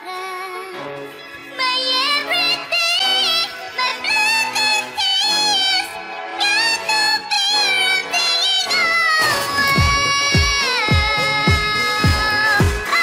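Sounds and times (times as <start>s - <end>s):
pitch-shifted pop vocal: 0.0s - 13.0s
backing track: 0.7s - 13.0s.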